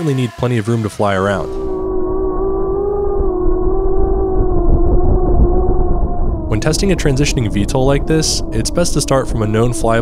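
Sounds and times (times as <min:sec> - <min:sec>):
low rumbling prop wash: 0:01.3 - 0:10.0
wind on microphone: 0:01.4 - 0:10.0.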